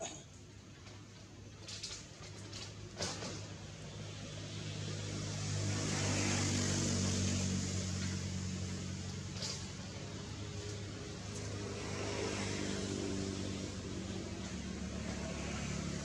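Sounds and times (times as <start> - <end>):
engine passing by: 1.8 - 16.0.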